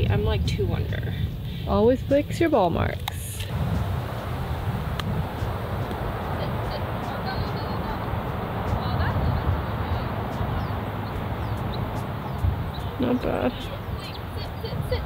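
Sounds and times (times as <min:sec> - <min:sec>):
wind rumble on microphone: 0:00.0 - 0:15.0.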